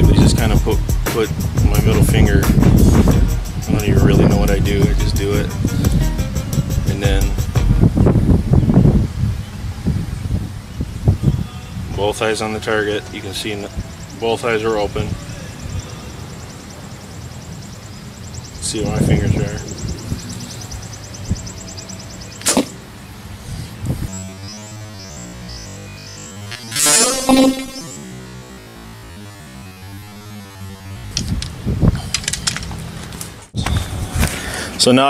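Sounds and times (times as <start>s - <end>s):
wind buffeting microphone: 0.0s - 14.2s, 18.3s - 22.4s, 23.0s - 24.2s, 30.9s - 34.8s
bow string snapping: 22.4s - 22.7s, 31.1s - 33.3s
electronic music: 24.0s - 31.5s.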